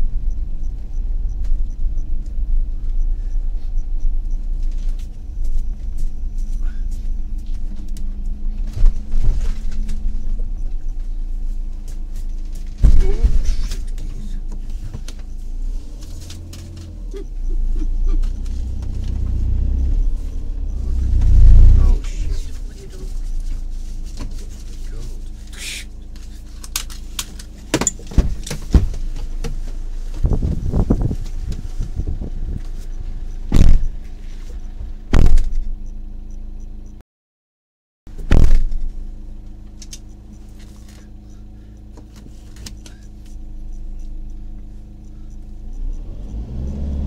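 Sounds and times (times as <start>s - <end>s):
motorhome engine rumbling: 0.0s - 37.0s, 38.1s - 47.0s
sharp knocks and thumps: 11.9s - 15.3s, 27.6s - 34.2s, 35.1s - 35.7s, 38.1s - 39.0s.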